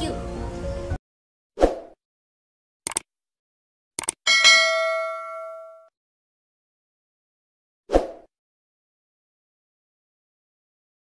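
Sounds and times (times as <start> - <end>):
double mouse click: 4.0 - 4.2
bell notification chime: 4.3 - 5.9.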